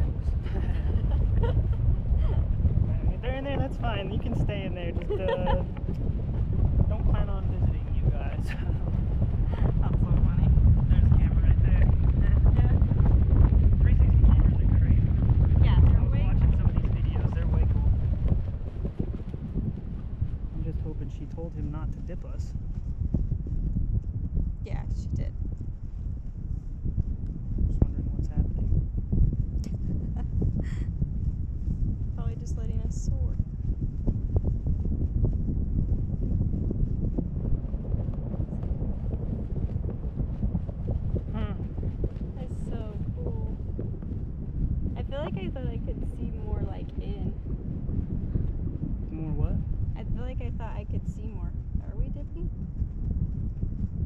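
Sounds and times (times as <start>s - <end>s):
wind buffeting microphone: 0.0s - 54.0s
person speaking: 0.8s - 5.7s.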